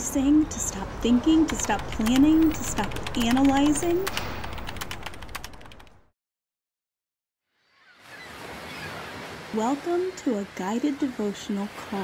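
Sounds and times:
keyboard typing clatter: 1.4 - 6.0
low rumble: 1.5 - 5.9.

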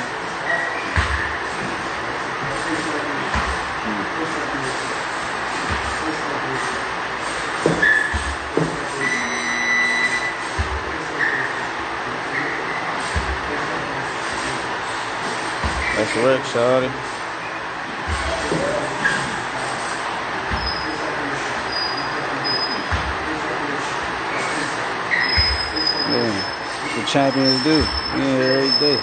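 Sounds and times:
dense background noise: 0.0 - 29.0
indistinct voices: 18.0 - 29.0.

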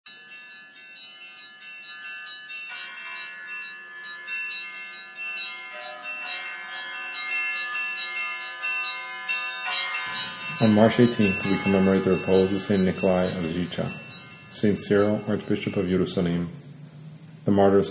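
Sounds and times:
bells ringing: 0.1 - 17.9.

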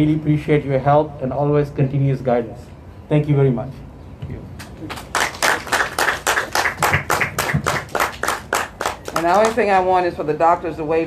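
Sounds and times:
group clapping: 4.6 - 9.7.

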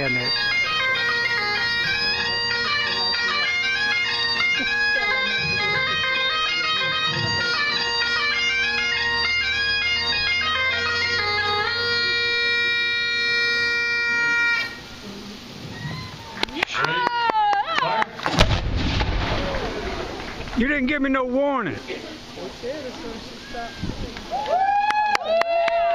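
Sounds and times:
bagpipes playing: 0.0 - 15.0.

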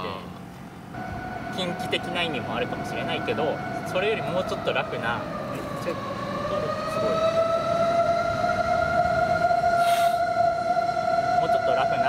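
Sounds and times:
fire engine siren wailing: 0.9 - 12.0.

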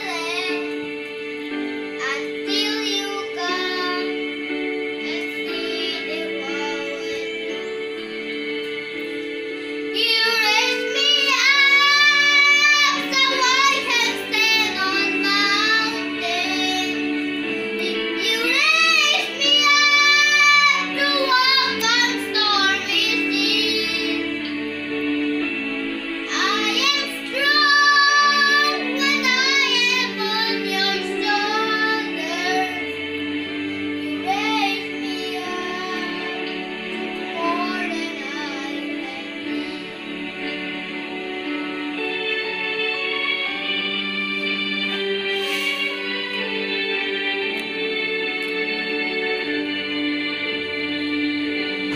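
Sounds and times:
boy singing: 0.0 - 0.8, 2.0 - 4.2, 5.0 - 7.7, 9.9 - 17.1, 17.8 - 24.3, 26.3 - 32.9, 34.0 - 36.6, 37.2 - 39.9
instrumental backing track: 0.0 - 51.9.

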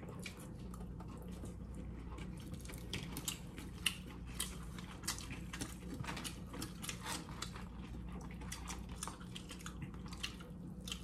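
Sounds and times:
person chewing fries: 0.0 - 11.0
steady low hum: 0.0 - 11.0.

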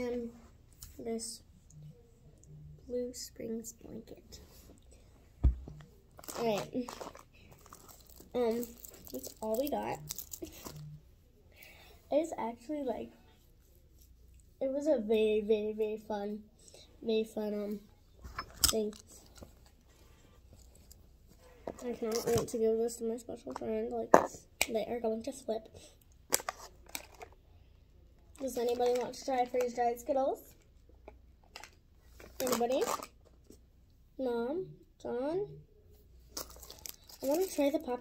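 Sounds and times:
plastic packaging crinkling: 6.2 - 10.8, 26.3 - 27.3, 32.4 - 33.1, 36.3 - 37.8.

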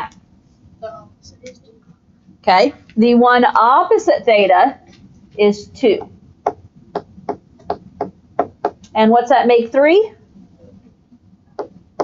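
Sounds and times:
stylus tapping on tablet: 5.9 - 9.0, 11.6 - 12.0.

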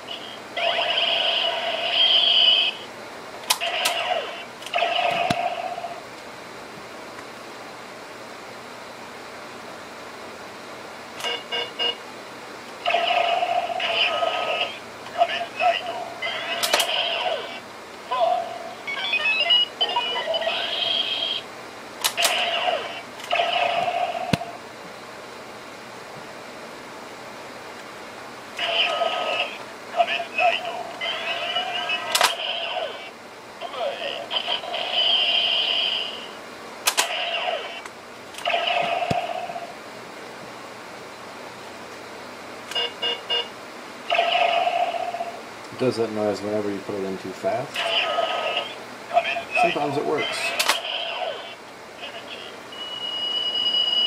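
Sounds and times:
toy belt electronic sound effects: 0.1 - 2.8, 3.6 - 6.0, 12.8 - 21.4, 22.0 - 24.4, 34.3 - 36.3, 37.0 - 39.7, 44.1 - 45.3, 47.8 - 51.6
tinny voice calls: 12.9 - 19.2.

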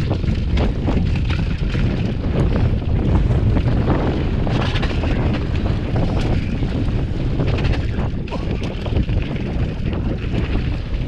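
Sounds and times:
bike rattling over stones: 0.0 - 11.0
bike tyres rumbling on gravel: 0.0 - 11.0
wind buffeting microphone: 0.0 - 11.0.

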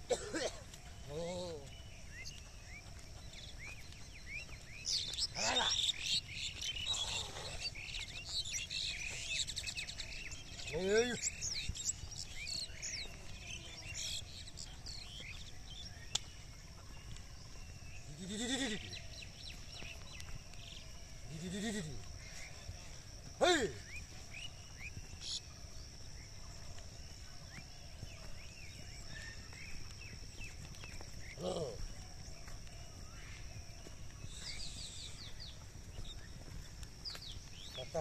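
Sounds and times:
bird chirps: 0.0 - 38.0.

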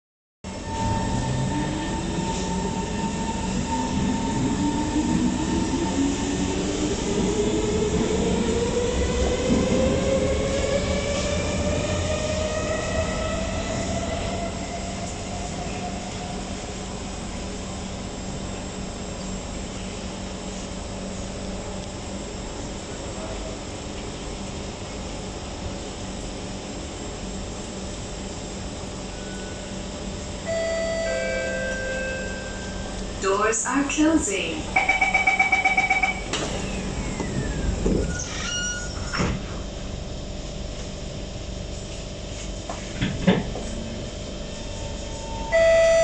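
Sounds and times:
train motors whining: 36.2 - 40.0.

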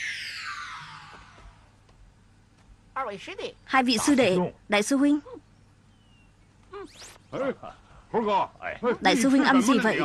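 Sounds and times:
synthesized descending whistle: 0.0 - 1.6.

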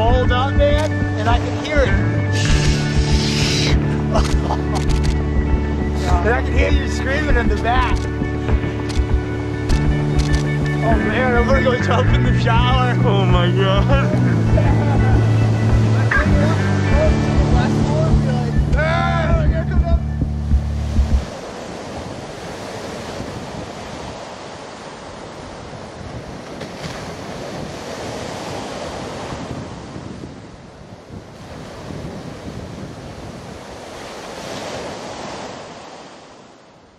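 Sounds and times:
background music: 0.0 - 21.3
slushy surf washing in: 20.7 - 36.9.

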